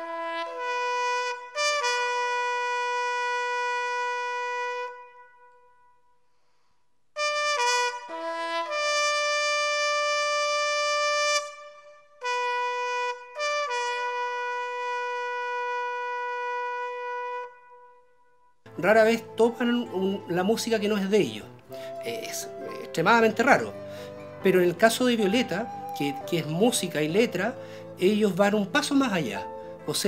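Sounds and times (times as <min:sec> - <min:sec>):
horn-like wind instrument note: 0:00.0 - 0:06.1, 0:07.2 - 0:18.5, 0:25.2 - 0:28.0.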